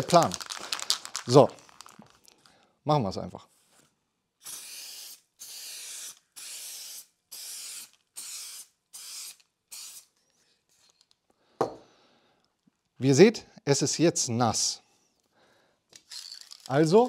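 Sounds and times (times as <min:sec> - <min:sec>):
aerosol spray can hissing: 0:04.4 - 0:10.1.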